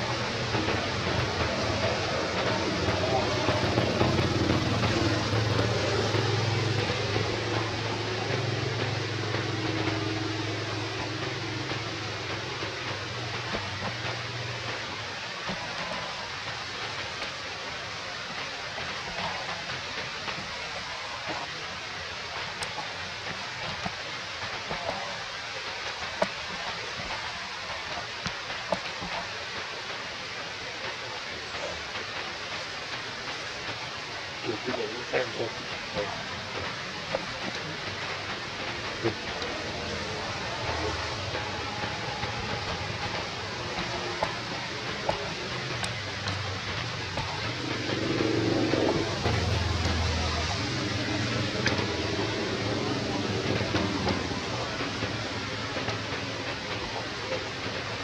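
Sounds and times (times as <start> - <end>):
low hum: 0.0 - 25.1, 25.8 - 58.0
steady outdoor hiss: 0.0 - 58.0.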